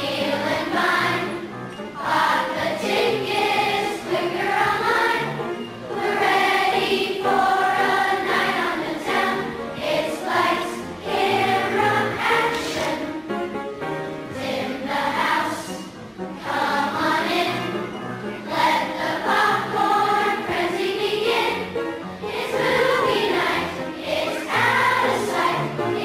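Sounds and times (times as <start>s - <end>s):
children's choir singing: 0.0s - 26.0s
musical accompaniment: 0.0s - 26.0s.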